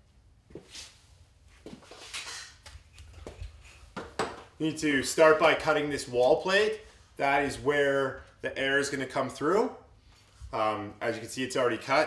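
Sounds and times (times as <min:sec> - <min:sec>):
knocks and rustles of moving about: 0:00.5 - 0:04.6.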